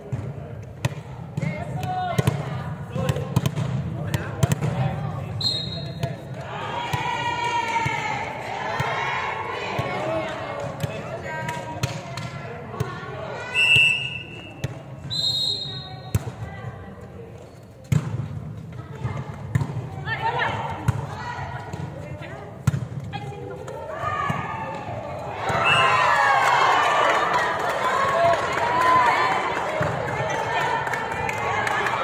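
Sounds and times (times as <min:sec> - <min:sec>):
players shouting: 0:04.1 - 0:11.4, 0:23.7 - 0:32.0.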